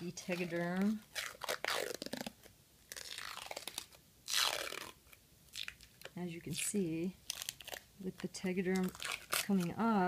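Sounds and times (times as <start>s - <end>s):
adhesive film peeling off skin: 0.2s - 6.1s, 7.2s - 7.9s, 8.7s - 10.0s.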